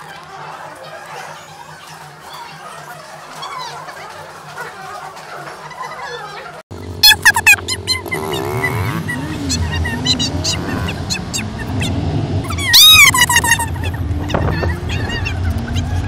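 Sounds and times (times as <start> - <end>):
car road rumble: 6.8 - 16.0
child squealing with laughter: 7.0 - 16.0.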